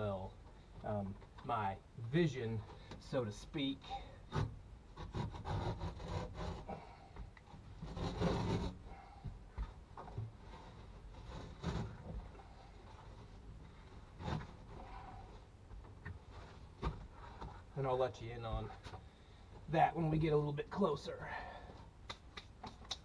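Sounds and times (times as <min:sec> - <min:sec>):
rubbing and scraping: 0:04.3 - 0:18.0.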